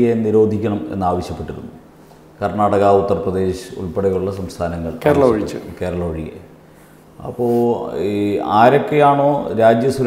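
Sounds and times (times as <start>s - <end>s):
man speaking: 0.0s - 1.8s, 2.4s - 6.5s, 7.2s - 10.0s.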